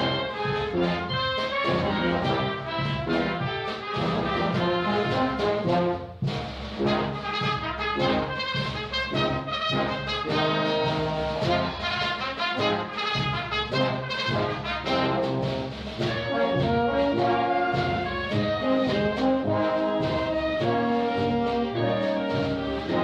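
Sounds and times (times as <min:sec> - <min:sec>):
wind band playing a march: 0:00.0 - 0:23.0.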